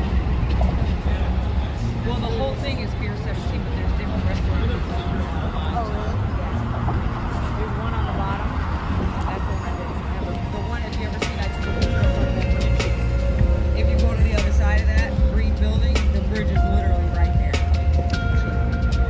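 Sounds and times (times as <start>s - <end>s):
faint voices: 0.0s - 19.0s
low city rumble: 0.0s - 19.0s
music with long held notes: 9.3s - 19.0s.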